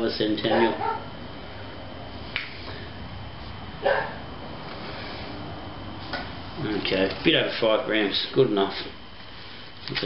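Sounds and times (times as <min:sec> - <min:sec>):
steady room hum: 0:00.0 - 0:10.0.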